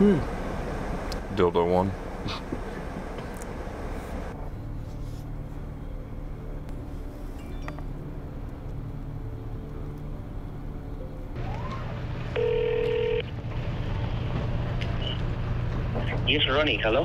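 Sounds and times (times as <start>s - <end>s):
low hum inside car: 8.0s - 13.3s
phone ringing tone: 12.3s - 13.3s.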